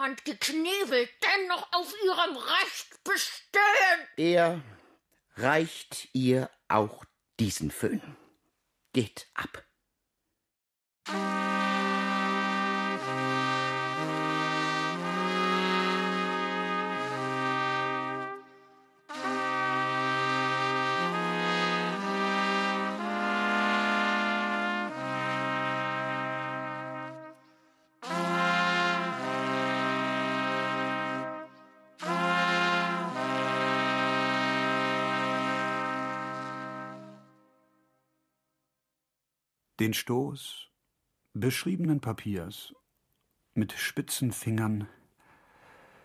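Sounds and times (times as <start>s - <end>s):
brass instrument low notes: 11.1s - 38.1s.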